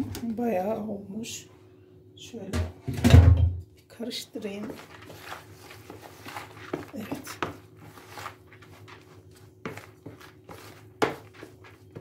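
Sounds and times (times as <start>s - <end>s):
spoon scraping plastic bowl: 4.6s - 12.0s.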